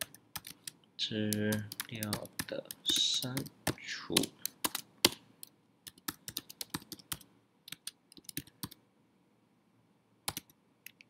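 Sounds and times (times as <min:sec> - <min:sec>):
typing on computer keyboard: 0:00.0 - 0:05.2, 0:05.8 - 0:08.8, 0:10.3 - 0:11.0.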